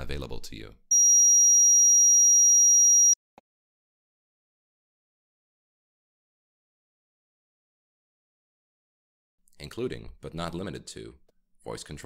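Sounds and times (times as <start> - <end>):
high-pitched electronic tone: 0.9 - 3.2.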